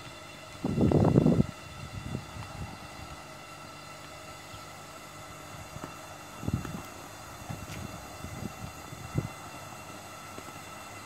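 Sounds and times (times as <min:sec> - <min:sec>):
air pumps humming: 0:00.0 - 0:11.0.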